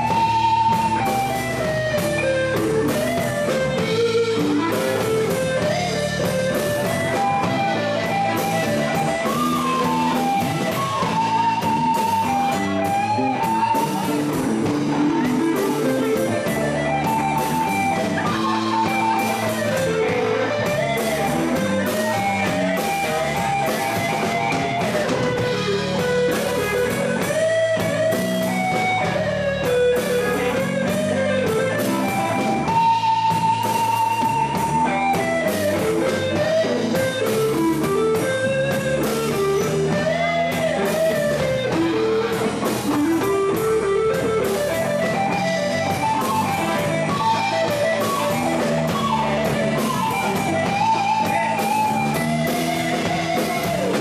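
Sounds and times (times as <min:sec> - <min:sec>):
bass guitar: 0:00.0 - 0:54.0
drum kit: 0:00.0 - 0:54.0
electric guitar lead solo: 0:00.0 - 0:54.0.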